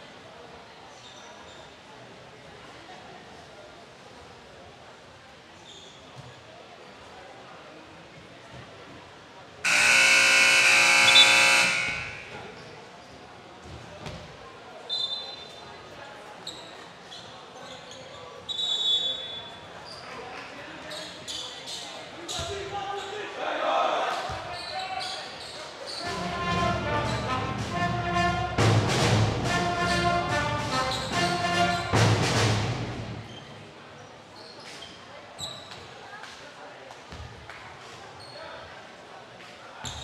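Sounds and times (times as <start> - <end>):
shoe squeaks: 0.9 - 1.8, 5.6 - 6.3, 14.9 - 15.6, 16.4 - 20.2, 20.8 - 23.2, 24.5 - 26.1, 33.3 - 35.9, 38.2 - 38.6
scoreboard horn buzzing: 9.7 - 12.4, 26.0 - 28.8, 29.4 - 32.2
echoing voices: 9.7 - 12.5.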